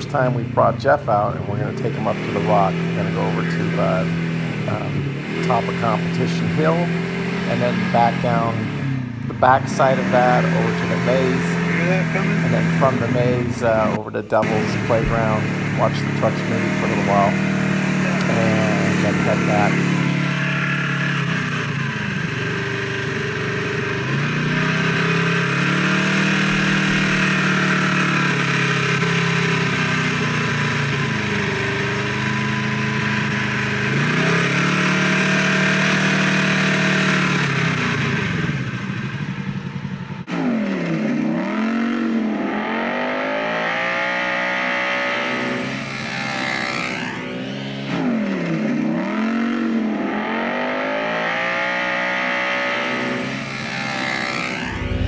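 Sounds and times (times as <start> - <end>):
off-road vehicle engine revving: 0.0 - 55.0.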